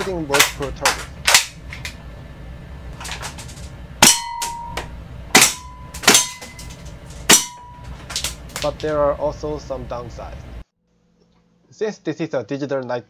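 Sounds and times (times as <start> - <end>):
steel target ringing: 4.0 - 8.4.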